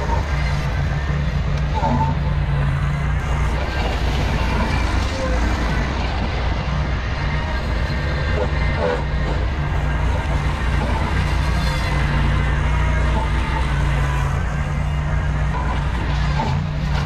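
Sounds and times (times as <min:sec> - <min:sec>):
rotary brush deck cutting grass: 0:00.0 - 0:17.0
tractor engine running: 0:00.0 - 0:17.0.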